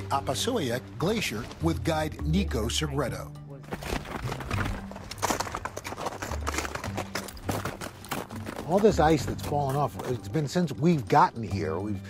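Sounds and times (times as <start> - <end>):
boots crunching on ice: 3.6 - 10.7.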